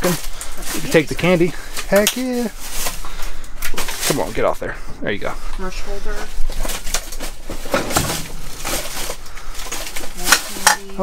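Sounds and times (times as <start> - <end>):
plastic bag crinkling: 0.0 - 4.5, 6.2 - 11.0
boxes shifting and knocking: 6.7 - 9.2.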